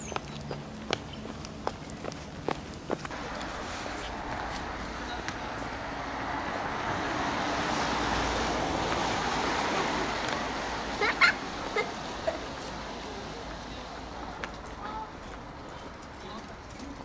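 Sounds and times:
car passing: 0:00.0 - 0:17.0.

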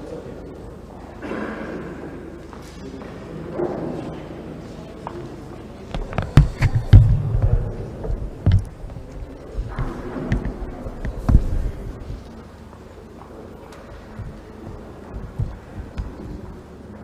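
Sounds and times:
knocks on microphone: 0:05.9 - 0:09.0, 0:09.6 - 0:12.2, 0:14.2 - 0:16.6.

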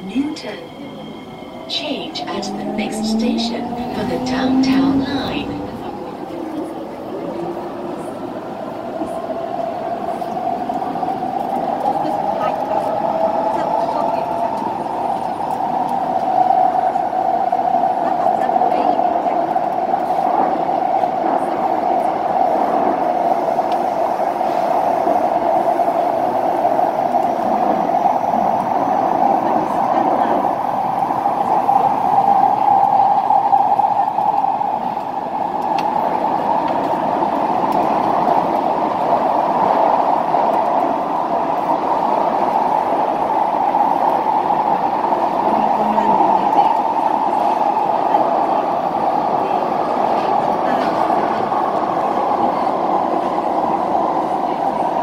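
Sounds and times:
train running noise: 0:00.0 - 0:55.0.

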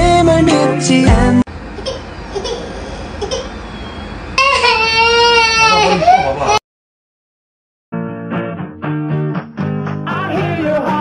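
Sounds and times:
baby wailing: 0:04.4 - 0:06.6.

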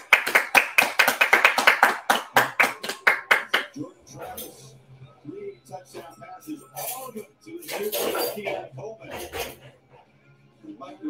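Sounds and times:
woman clapping hands: 0:00.0 - 0:03.8.

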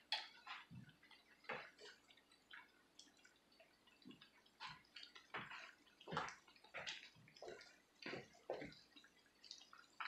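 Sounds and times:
fritters frying in hot oil: 0:00.0 - 0:10.0
oil popping: 0:00.0 - 0:10.0.

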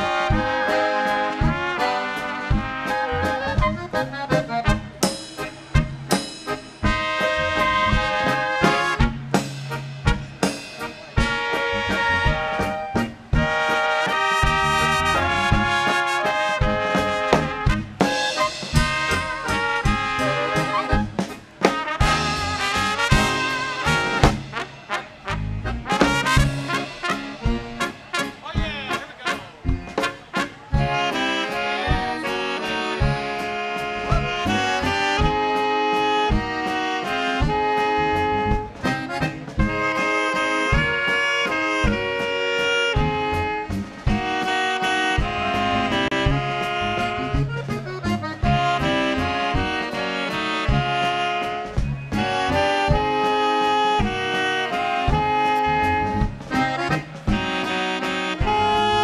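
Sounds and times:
brass band playing a waltz: 0:00.0 - 0:59.0
regular drum beat: 0:00.0 - 0:59.0.

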